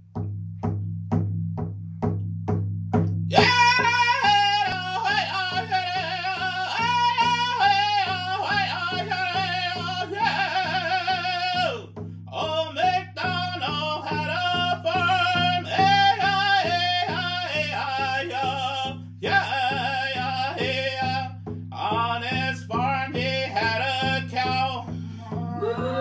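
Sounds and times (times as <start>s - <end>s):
frame drum beat: 0.0s - 26.0s
man singing long held notes: 3.3s - 26.0s.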